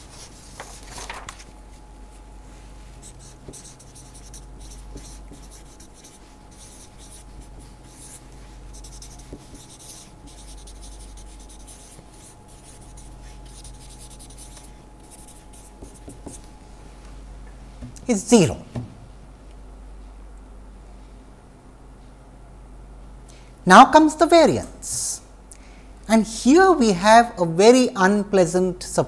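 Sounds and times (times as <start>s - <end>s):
marker scratching on paper: 2.9s - 16.5s.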